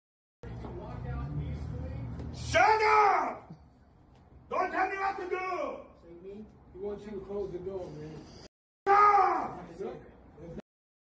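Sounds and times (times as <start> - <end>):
man shouting: 2.4 - 3.6, 4.5 - 6.0, 8.9 - 9.9.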